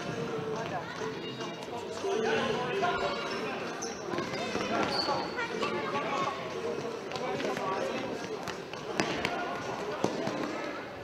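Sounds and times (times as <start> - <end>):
spectators talking: 0.0 - 11.0.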